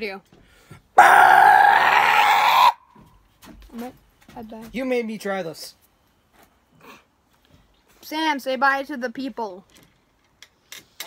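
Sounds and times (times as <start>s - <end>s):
boy yelling harshly: 1.0s - 2.8s.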